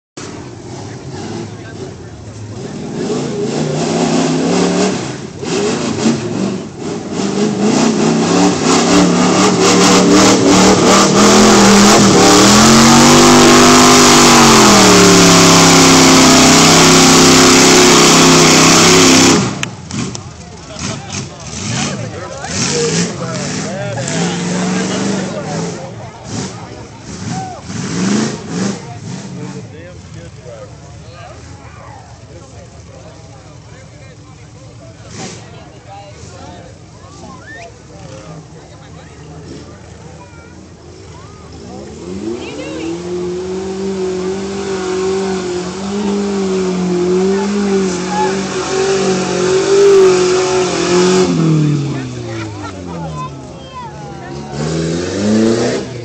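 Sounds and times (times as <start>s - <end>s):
truck engine revving: 0.2s - 56.0s
voices: 0.2s - 56.0s.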